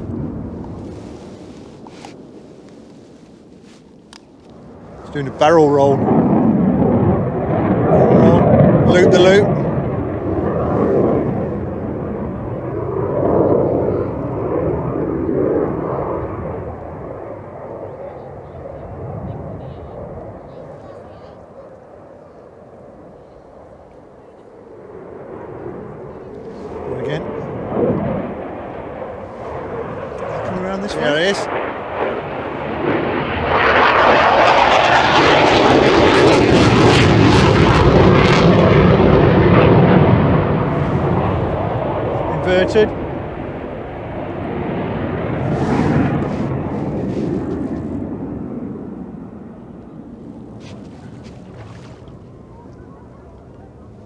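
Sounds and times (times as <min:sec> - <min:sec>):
jet engines roaring: 0:00.0 - 0:54.0.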